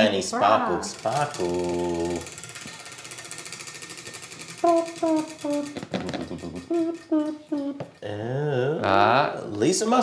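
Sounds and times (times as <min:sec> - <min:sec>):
prize wheel ticking: 0:00.0 - 0:08.2.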